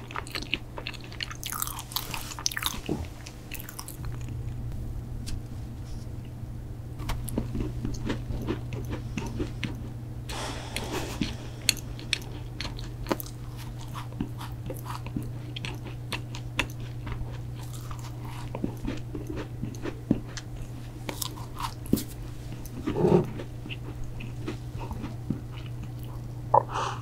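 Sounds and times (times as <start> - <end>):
biting and chewing cookie: 0.0 - 4.4, 7.1 - 26.7.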